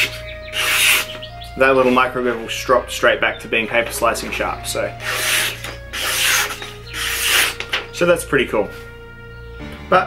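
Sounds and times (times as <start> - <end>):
knife slicing paper: 0.0 - 1.1, 5.0 - 7.7.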